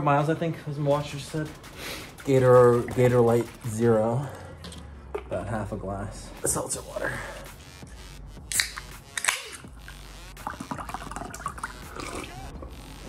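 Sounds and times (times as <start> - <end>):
drink mixed in a glass: 10.4 - 12.5.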